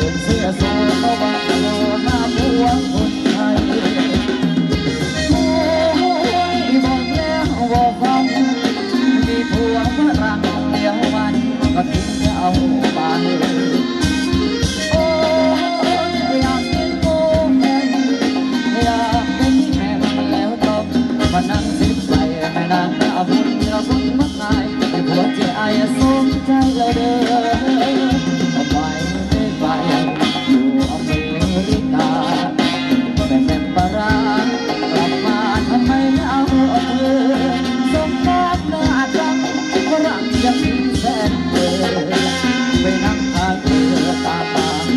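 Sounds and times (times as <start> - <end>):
dance band instruments: 0.0 - 44.9
person singing: 0.0 - 44.9
steady percussion beat: 0.0 - 44.9.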